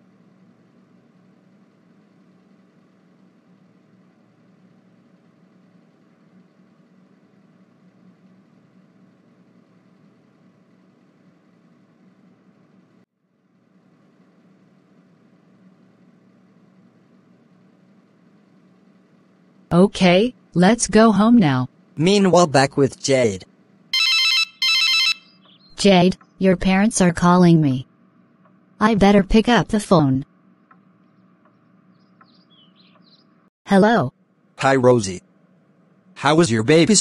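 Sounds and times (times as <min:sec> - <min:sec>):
faint low engine hum: 0:00.0 - 0:24.0, 0:25.4 - 0:37.0.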